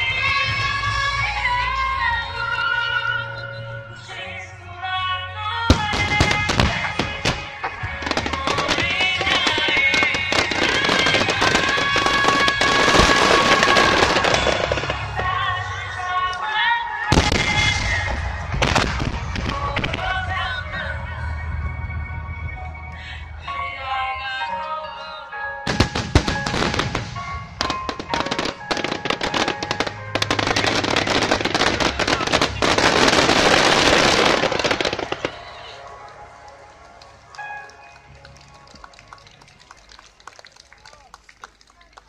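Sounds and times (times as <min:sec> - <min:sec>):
music playing: 0:00.0 - 0:41.7
fireworks bursting and crackling: 0:05.7 - 0:15.7, 0:17.1 - 0:20.5, 0:25.7 - 0:36.6.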